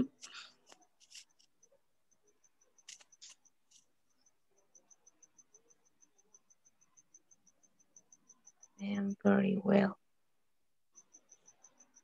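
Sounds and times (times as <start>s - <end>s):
faint high-pitched chirp: 1.1s - 10.0s, 10.9s - 12.0s.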